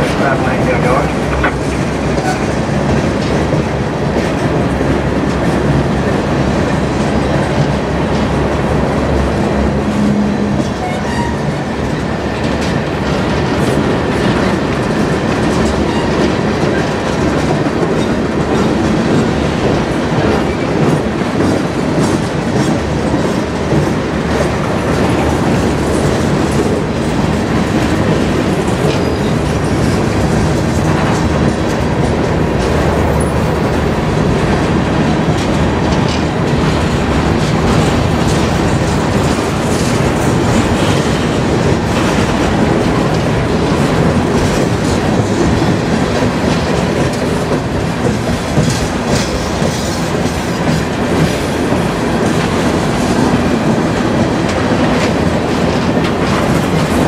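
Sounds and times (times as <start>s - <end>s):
freight train rumbling past: 0.0s - 57.0s
wheels clacking over rail joints: 0.0s - 57.0s.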